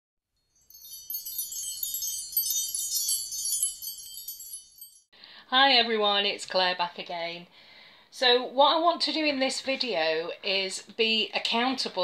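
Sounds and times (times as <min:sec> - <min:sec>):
wind chimes tinkling: 0:00.4 - 0:05.1.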